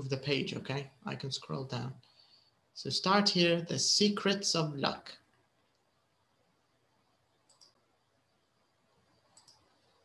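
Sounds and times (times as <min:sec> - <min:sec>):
faint sharp clicks: 0:07.4 - 0:07.8, 0:09.3 - 0:09.8.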